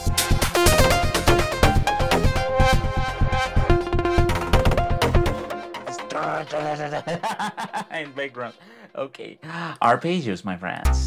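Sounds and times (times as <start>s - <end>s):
fast drum pattern: 0.0s - 8.6s
synth melody: 0.1s - 8.7s.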